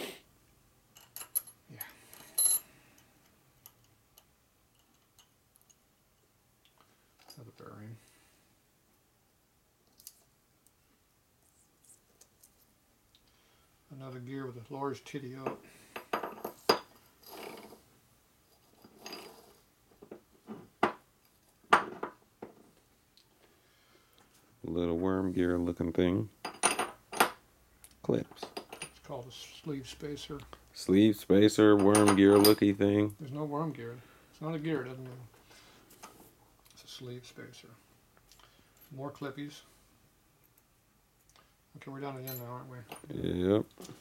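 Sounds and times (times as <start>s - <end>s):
metal parts clicking and clinking: 0.9s - 2.6s, 3.6s - 5.8s, 31.8s - 32.7s
soft metal scraping: 16.4s - 17.9s.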